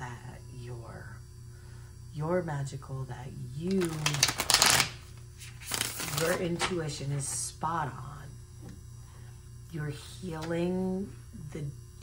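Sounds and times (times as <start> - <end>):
cards being riffle-shuffled: 3.7 - 6.8.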